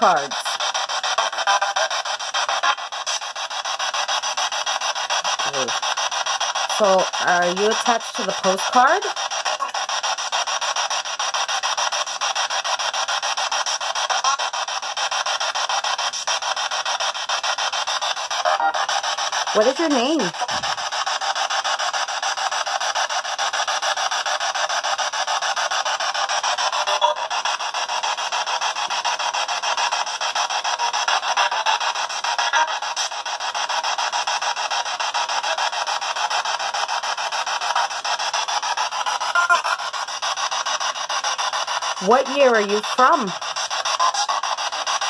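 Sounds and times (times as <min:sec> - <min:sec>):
chopped radio static hiss: 0:00.0 - 0:45.0.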